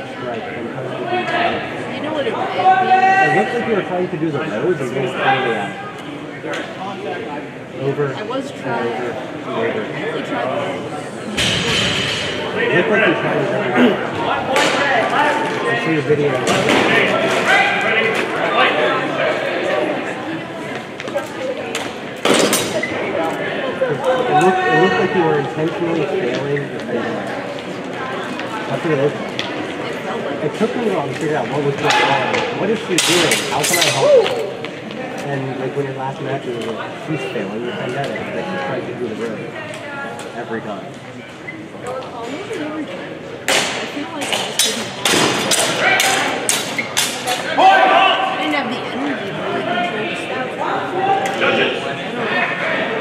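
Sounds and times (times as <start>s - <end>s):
background chatter in echoing hall: 0.0s - 53.0s.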